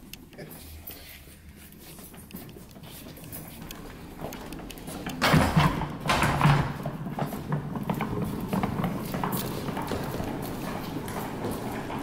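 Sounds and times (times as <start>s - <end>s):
footsteps: 0.0s - 12.0s
flight cases rolling and rattling: 2.2s - 12.0s.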